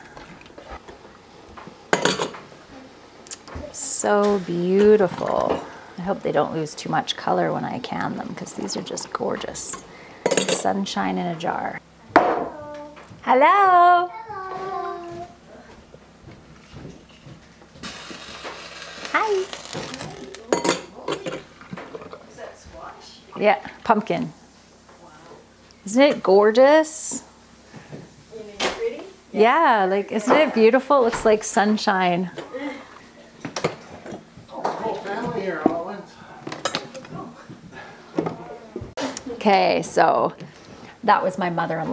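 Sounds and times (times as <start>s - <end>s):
splashy hiss: 17.8s - 19.6s.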